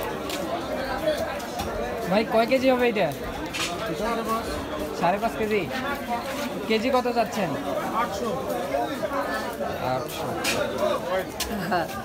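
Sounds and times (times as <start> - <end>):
market chatter: 0.0 - 12.0.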